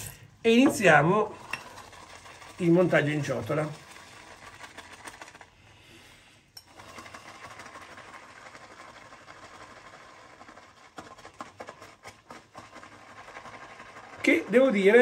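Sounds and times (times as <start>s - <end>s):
shaving brush swishing in bowl: 1.2s - 5.6s, 6.8s - 15.0s.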